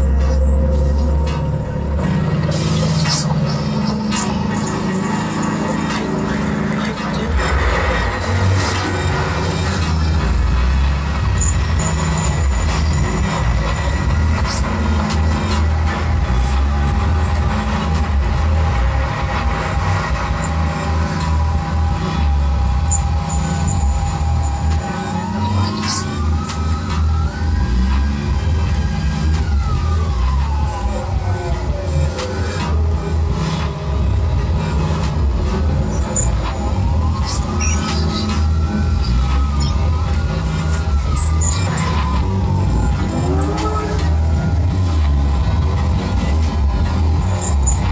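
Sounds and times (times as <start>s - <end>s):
fretless bass line: 0.0s - 47.9s
siren-like gliding tone: 0.0s - 47.9s.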